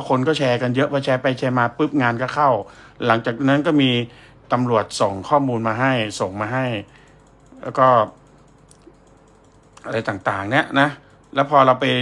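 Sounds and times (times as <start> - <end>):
man speaking: 0.0 - 6.9, 7.6 - 8.2, 9.8 - 12.0
laptop keyboard clicks: 6.8 - 10.6.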